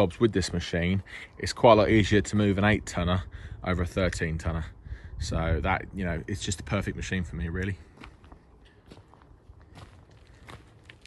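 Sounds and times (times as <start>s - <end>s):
faint footsteps outdoors: 0.0s - 4.9s, 5.6s - 11.0s.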